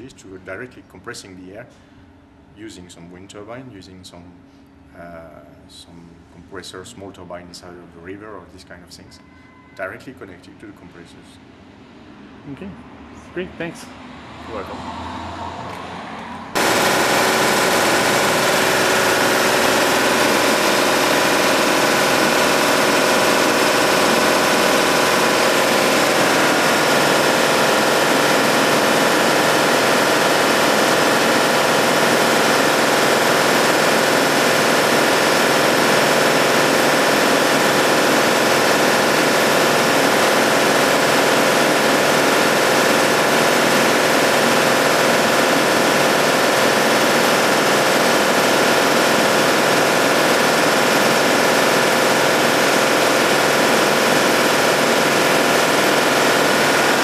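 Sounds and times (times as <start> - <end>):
air compressor running: 16.5 - 57.0.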